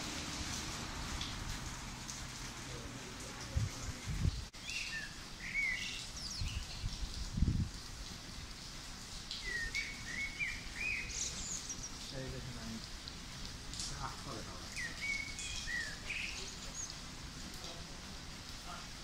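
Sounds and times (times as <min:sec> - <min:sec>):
rain hiss: 0:00.0 - 0:19.0
small songbird chirping: 0:03.8 - 0:07.0, 0:09.3 - 0:12.1, 0:14.7 - 0:17.0.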